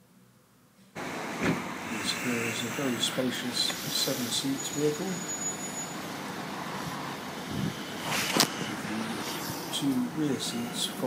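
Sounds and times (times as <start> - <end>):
wind rushing: 6.0 - 9.9.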